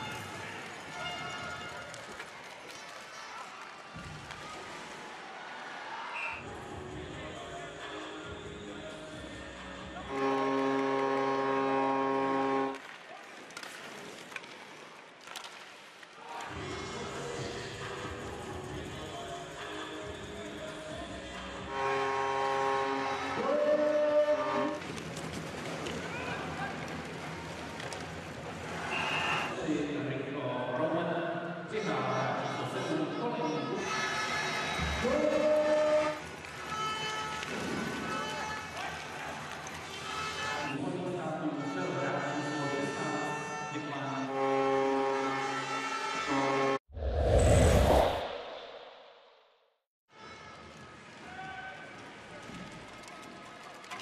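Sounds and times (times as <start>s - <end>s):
arena noise: 0.0s - 10.9s
arena crowd noise: 0.0s - 46.6s, 50.1s - 54.0s
music: 6.4s - 11.2s, 16.6s - 23.5s
arena goal horn: 10.0s - 12.8s, 21.6s - 24.8s, 34.2s - 38.8s, 40.0s - 40.8s, 41.5s - 46.8s.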